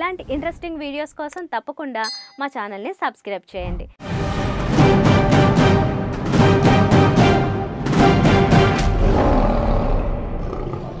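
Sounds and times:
lion roar: 8.8 - 11.0.

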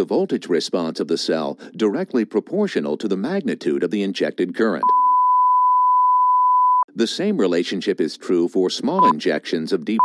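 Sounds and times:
electronic beep: 4.8 - 6.9, 9.0 - 9.2.

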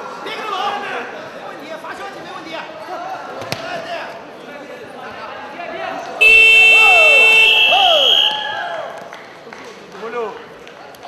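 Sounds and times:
scoreboard buzzer tone: 6.2 - 8.4
crowd shouting: 6.2 - 9.0.

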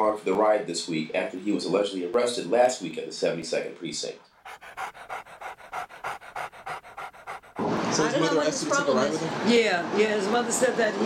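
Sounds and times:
rapid rhythmic panting: 4.2 - 7.8.

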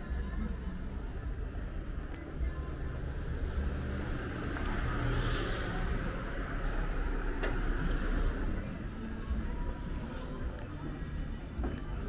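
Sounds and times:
low traffic rumble: 0.0 - 12.0.

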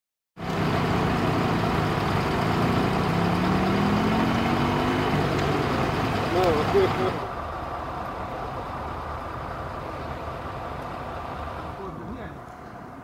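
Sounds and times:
heavy vehicle engine running: 0.4 - 13.0
rising tone: 0.8 - 6.3.

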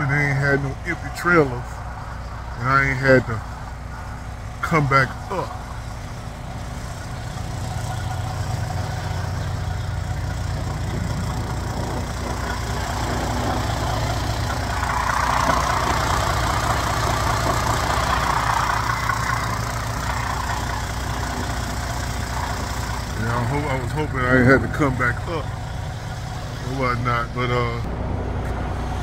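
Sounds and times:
diesel truck engine idling: 0.0 - 29.0.

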